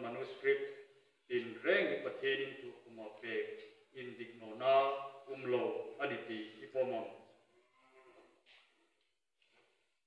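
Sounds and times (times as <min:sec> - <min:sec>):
man speaking: 0:00.0 - 0:07.4.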